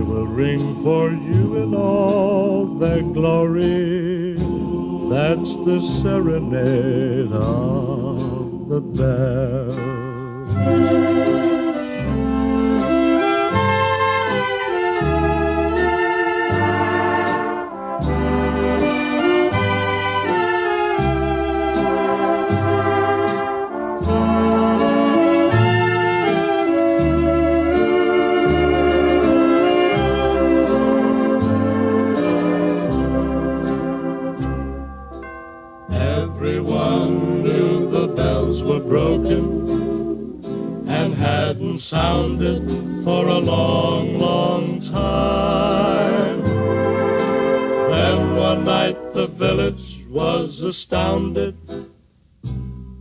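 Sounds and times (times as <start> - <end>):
big band ballad on old record: 0.0 - 53.0.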